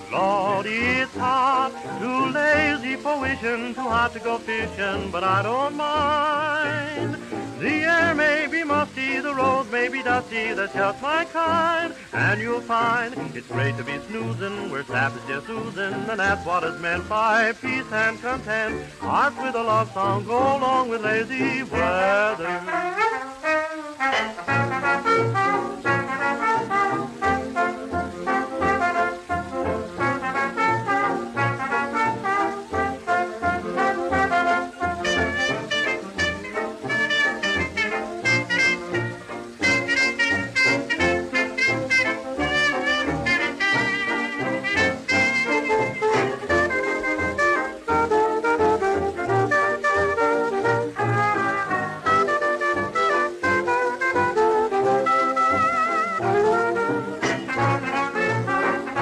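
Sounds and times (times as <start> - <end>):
dance band playing fox trot: 0.0 - 59.0.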